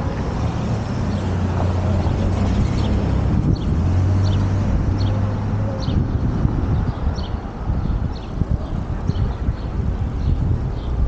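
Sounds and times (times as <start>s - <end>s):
road noise: 0.0s - 11.0s
wind rumbling over microphone: 0.0s - 11.0s.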